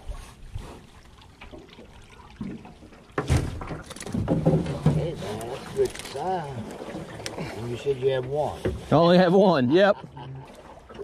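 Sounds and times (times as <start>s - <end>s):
water splashing: 0.0s - 11.0s.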